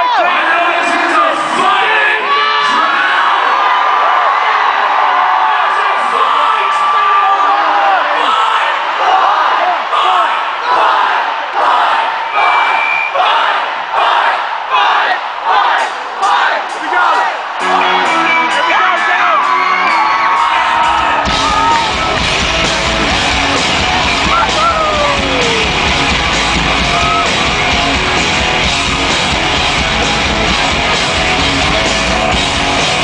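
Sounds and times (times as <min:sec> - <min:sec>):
crowd cheering and yelling: 0:00.0 - 0:33.0
crowd shouting in rhythm: 0:01.6 - 0:33.0
band playing: 0:15.8 - 0:33.0
singer screaming into microphone: 0:24.2 - 0:25.8.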